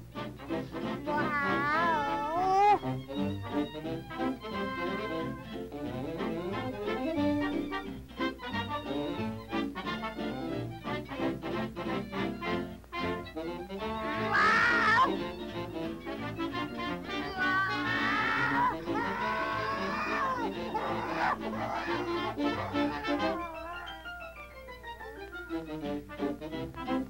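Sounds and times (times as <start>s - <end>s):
person imitating cat meow: 1.0s - 2.8s, 4.9s - 5.6s, 14.0s - 15.2s, 17.1s - 24.2s.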